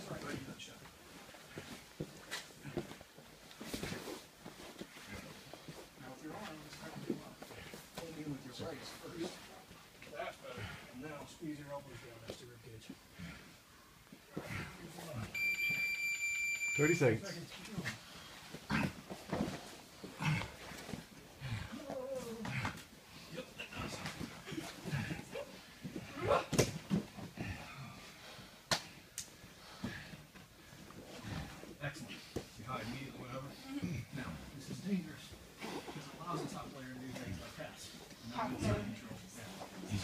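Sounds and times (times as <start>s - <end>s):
heavy breaths and grunts: 1.2s - 15.3s, 17.8s - 40.0s
heavy breathing: 10.4s - 15.2s, 17.9s - 26.0s, 29.4s - 34.2s
bodies bumping against a mat: 18.4s - 22.9s
low grunts: 18.7s - 19.0s, 20.2s - 20.7s.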